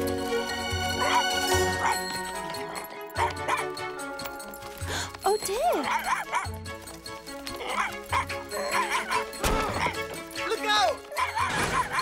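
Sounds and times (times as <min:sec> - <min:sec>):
light background music: 0:00.0 - 0:12.0
cartoon puppy yipping barks: 0:05.8 - 0:06.5, 0:07.7 - 0:09.9, 0:11.2 - 0:12.0.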